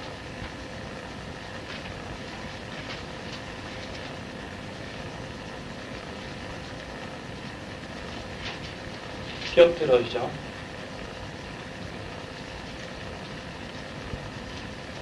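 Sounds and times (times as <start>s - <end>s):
background hiss and rumble: 0.0s - 15.0s
faint steady hum: 0.0s - 15.0s.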